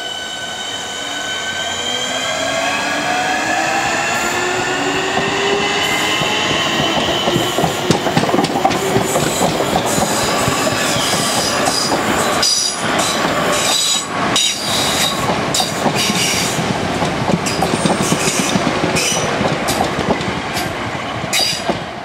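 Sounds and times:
train wheels squealing: 0.0s - 7.9s, 9.1s - 16.6s, 21.3s - 21.7s
train rumble: 2.3s - 22.0s
rail joint clicks: 5.0s - 22.0s.

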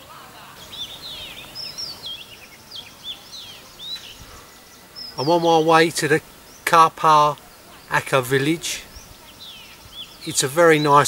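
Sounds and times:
faint outdoor hiss: 0.0s - 11.0s
small birds chirping: 0.0s - 11.0s.

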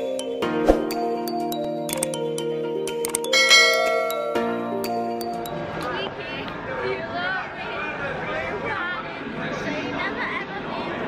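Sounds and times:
people chattering in echoing hall: 5.5s - 11.0s.

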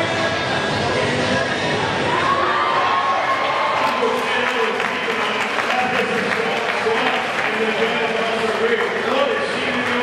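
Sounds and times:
crowd voices: 0.0s - 10.0s
audience applauding: 3.3s - 10.0s.

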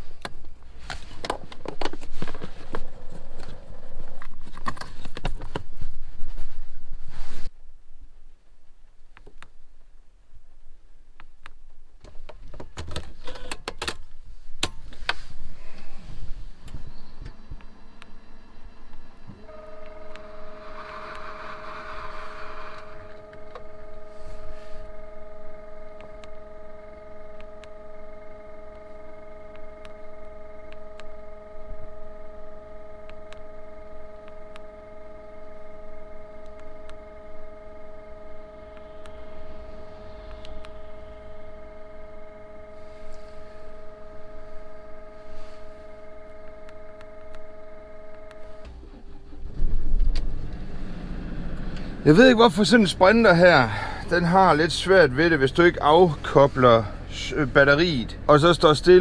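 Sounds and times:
electrical hum: 0.0s - 59.0s.

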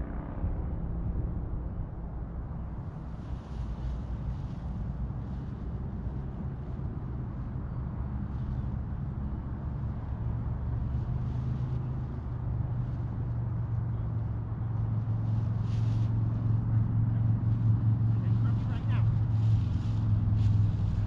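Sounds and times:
paramotor engine droning: 0.0s - 21.0s.

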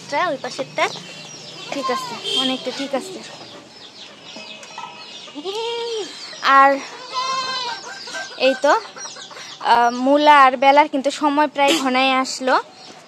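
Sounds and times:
hens clucking: 0.9s - 10.0s
goats bleating: 6.9s - 7.8s.

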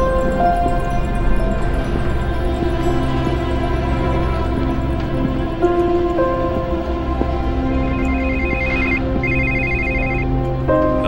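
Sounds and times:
background music: 0.0s - 11.0s
phone ringing: 8.0s - 10.3s.

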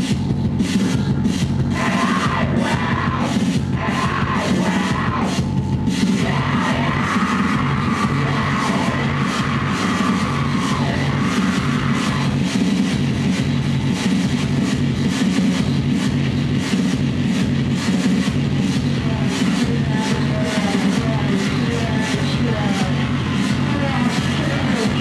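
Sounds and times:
distorted electronic noise: 0.0s - 25.0s
rapid crackling stutters: 0.0s - 25.0s.

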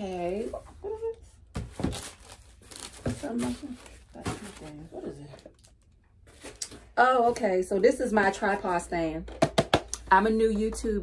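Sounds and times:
cardboard tearing and crinkling: 1.6s - 4.8s.

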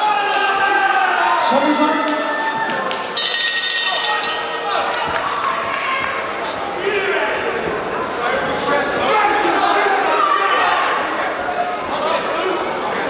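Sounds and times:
crowd voices and shouts: 0.0s - 13.0s
boxing bell ringing: 3.2s - 5.8s.

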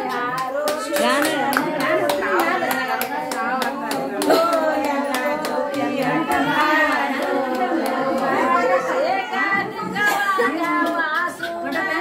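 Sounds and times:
hand claps: 0.0s - 8.8s, 10.4s - 12.0s
women singing together: 0.0s - 12.0s.

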